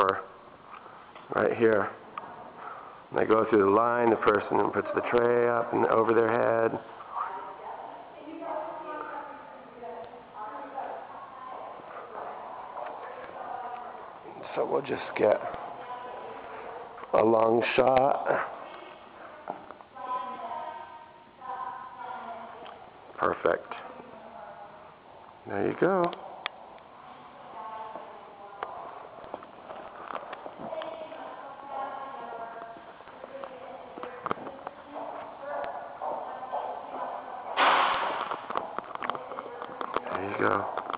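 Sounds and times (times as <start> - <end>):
faint voices: 0.0 - 40.9
footsteps on a tiled floor: 18.2 - 19.9, 26.2 - 40.9.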